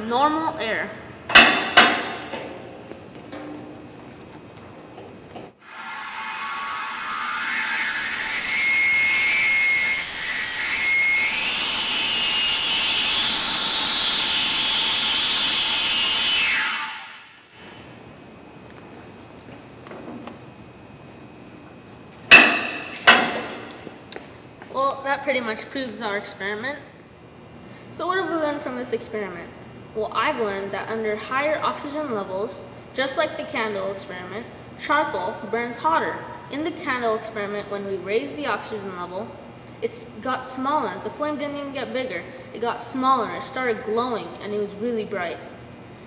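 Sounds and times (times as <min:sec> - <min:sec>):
sharp knock: 0:22.3 - 0:23.7.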